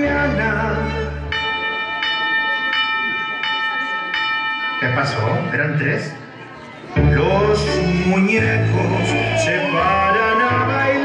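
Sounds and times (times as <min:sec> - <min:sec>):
clock chiming: 0:01.3 - 0:05.8.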